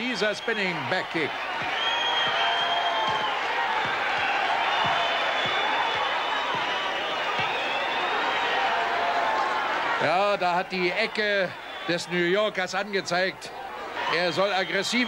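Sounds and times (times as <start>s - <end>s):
crowd cheering and shouting: 0.0s - 15.0s.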